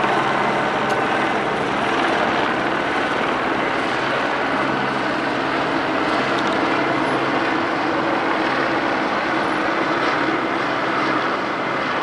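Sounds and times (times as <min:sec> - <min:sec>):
loud engine drone: 0:00.0 - 0:12.0.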